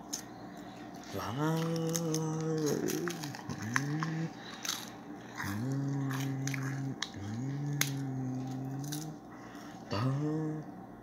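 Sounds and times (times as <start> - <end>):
low voice drawn-out sounds: 1.0 - 4.4, 5.4 - 10.9.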